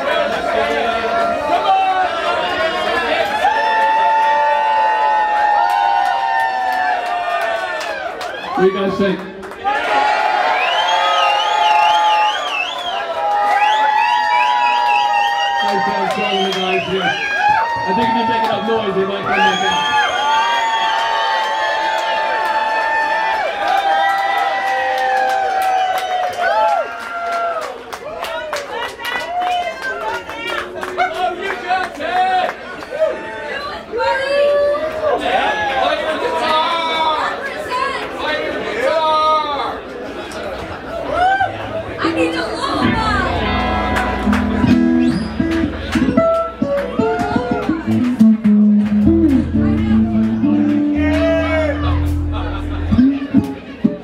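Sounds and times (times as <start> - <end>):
crowd voices: 0.0 - 5.1, 30.0 - 54.0
crowd whooping: 0.0 - 31.3, 40.8 - 54.0
crowd clapping: 3.0 - 35.4, 42.0 - 54.0
live rock band playing: 42.0 - 54.0.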